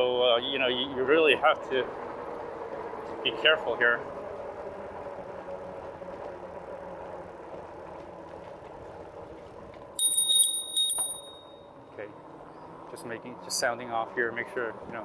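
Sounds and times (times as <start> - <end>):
electric bike humming: 0.0 - 15.0
bicycle bell dinging: 10.0 - 11.8.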